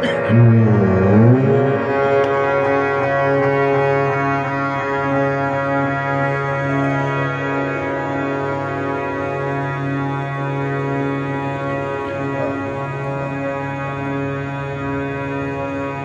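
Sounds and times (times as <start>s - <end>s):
harmonium playing chords: 0.0s - 16.0s.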